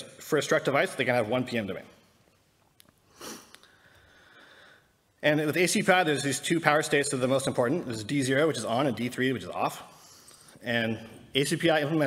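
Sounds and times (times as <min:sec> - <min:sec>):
man sniffing: 0:03.1 - 0:04.8.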